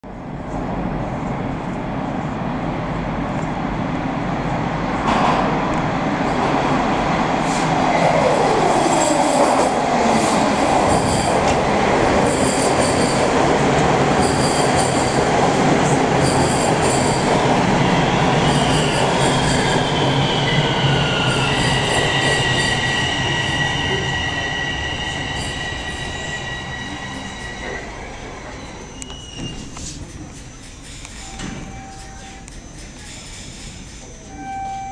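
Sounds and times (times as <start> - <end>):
subway train rolling: 0.0 - 34.9
train brakes squealing: 14.2 - 15.2, 16.2 - 17.3, 18.0 - 34.9.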